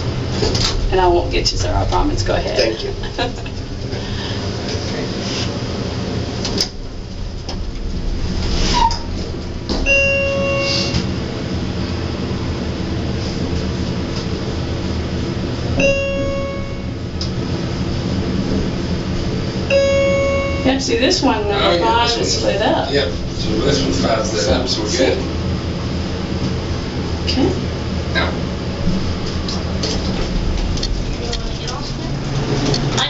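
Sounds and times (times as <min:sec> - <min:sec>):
elevator humming: 0:00.0 - 0:33.0
electronic elevator chime: 0:09.8 - 0:11.2, 0:15.8 - 0:17.1, 0:19.7 - 0:21.8.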